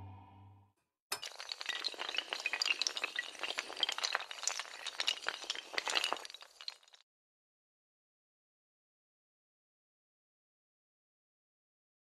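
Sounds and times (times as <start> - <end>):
dominoes toppling clatter: 1.2 - 7.0.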